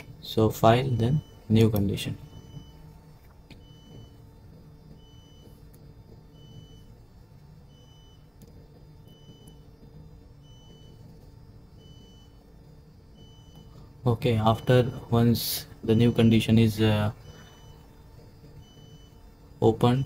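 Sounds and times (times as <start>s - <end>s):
low machinery hum: 0.0s - 20.0s
high electronic beeps: 3.6s - 5.6s, 10.4s - 18.0s, 18.6s - 20.0s.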